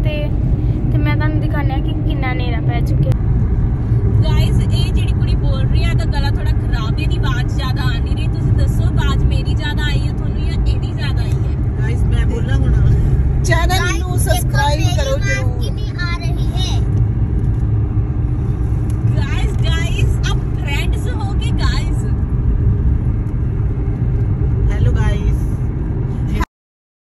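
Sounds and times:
car cabin road noise: 0.0 - 26.5
voices: 4.2 - 16.8, 19.1 - 22.1.

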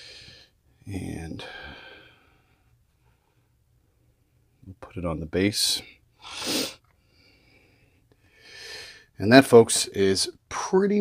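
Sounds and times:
man breathing in through nose: 0.0 - 0.6, 6.2 - 9.1.

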